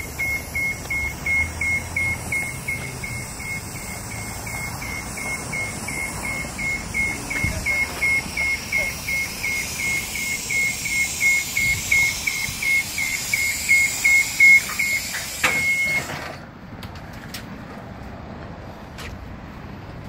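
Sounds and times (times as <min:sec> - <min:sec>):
high-pitched alarm beeps: 0:00.0 - 0:16.1.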